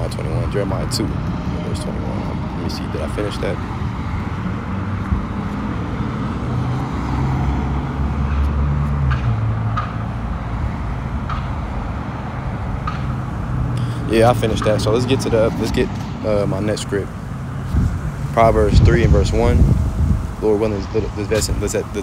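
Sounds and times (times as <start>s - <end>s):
motor vehicle rumble: 0.0s - 22.0s.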